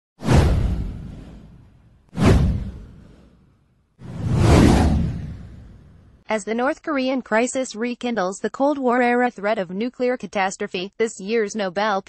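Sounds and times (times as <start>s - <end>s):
whoosh sound effects: 0.2s - 6.2s.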